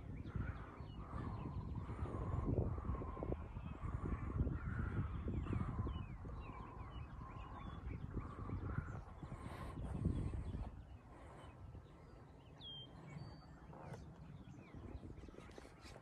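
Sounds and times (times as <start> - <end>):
small birds chirping: 0.0 - 16.0
wind buffeting microphone: 0.0 - 16.0.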